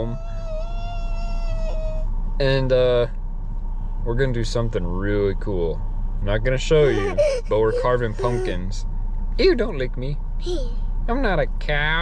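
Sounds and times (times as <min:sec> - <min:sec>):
steady low hum inside car: 0:00.0 - 0:12.0.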